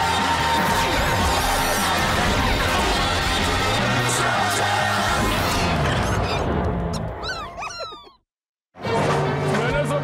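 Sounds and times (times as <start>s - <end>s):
high squeaky chirps and whimpers: 6.0s - 8.3s.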